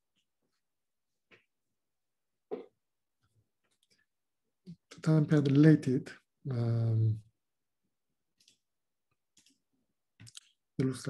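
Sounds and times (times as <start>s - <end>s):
man saying um: 6.5s - 7.2s.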